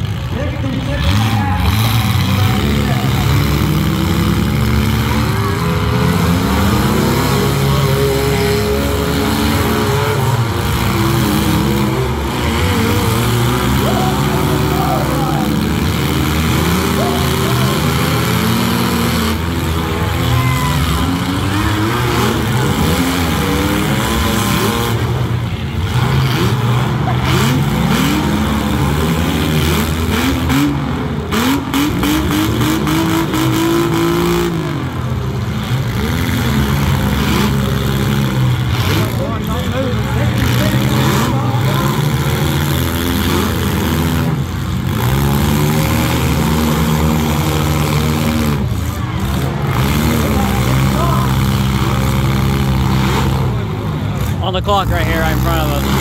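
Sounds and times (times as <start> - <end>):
car engines revving: 0.0 - 56.0
cars crashing: 0.0 - 56.0.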